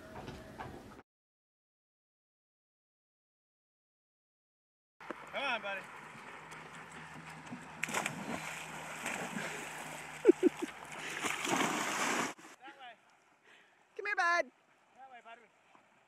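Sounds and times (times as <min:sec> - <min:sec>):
dogs swimming in splashing water: 0:05.9 - 0:12.5
dog splashing into water: 0:07.8 - 0:12.4.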